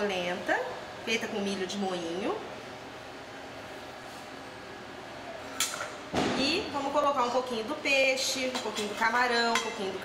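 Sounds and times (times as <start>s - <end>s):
kitchen background: 5.5s - 10.0s
utensil clinking on kitchenware: 9.4s - 10.0s.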